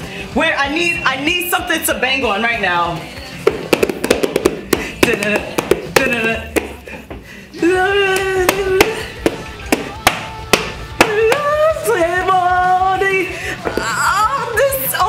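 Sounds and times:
hands slapping and tapping: 3.5 - 6.8, 8.2 - 11.5.

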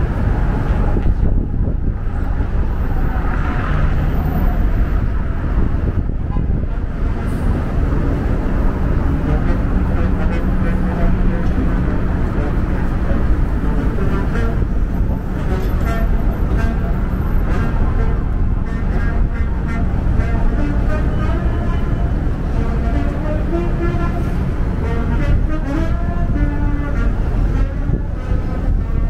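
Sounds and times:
rumble of passing vehicles: 0.0 - 29.0
people talking: 9.2 - 16.0.

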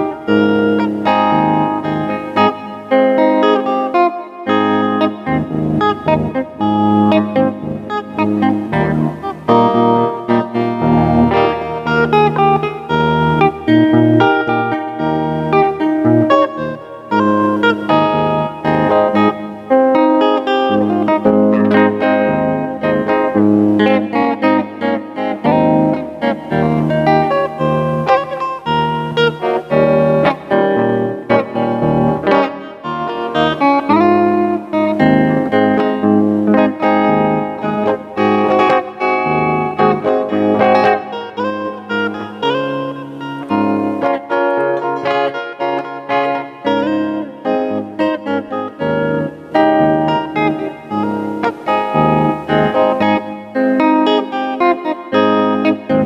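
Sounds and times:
electric guitar fingerstyle melody: 0.0 - 56.0.

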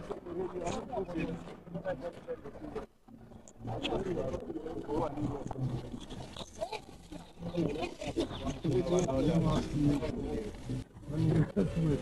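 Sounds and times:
men talking and calling out: 3.6 - 12.0.

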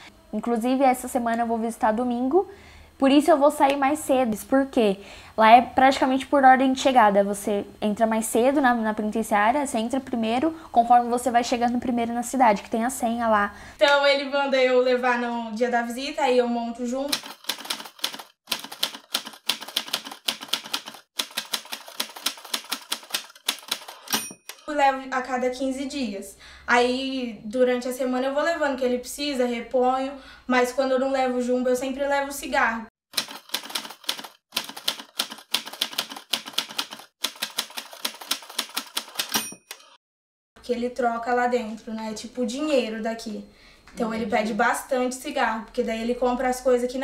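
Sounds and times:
typewriter keys clacking: 17.1 - 24.2, 33.2 - 40.0
typewriter bell ding: 23.9 - 24.6, 39.2 - 40.0
typewriter key clacks: 33.2 - 40.0.

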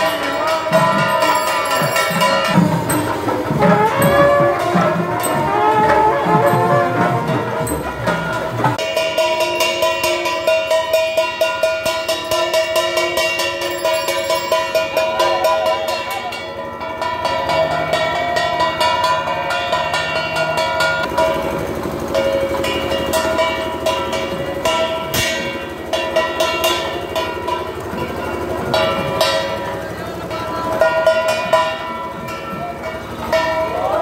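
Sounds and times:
crowd voices: 0.0 - 10.5, 13.2 - 20.1, 21.0 - 34.0
wind instrument melody: 0.0 - 10.5
metallic percussion strikes: 0.0 - 34.0
rapid drumming: 0.0 - 34.0.

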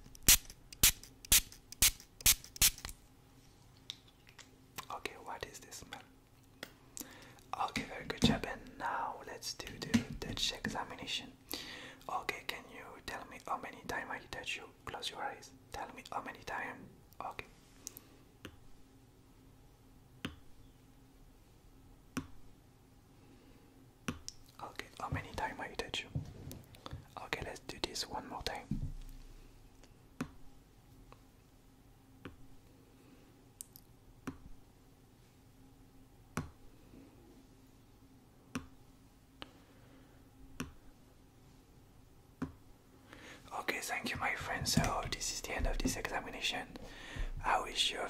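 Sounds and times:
man whispering: 4.8 - 6.1, 7.5 - 11.4, 12.0 - 17.5, 24.6 - 26.2, 27.0 - 28.8, 43.5 - 48.0.

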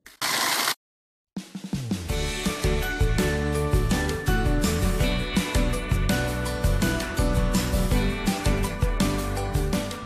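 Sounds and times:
blender motor running: 0.1 - 0.8
music with drum beat: 1.4 - 10.0.

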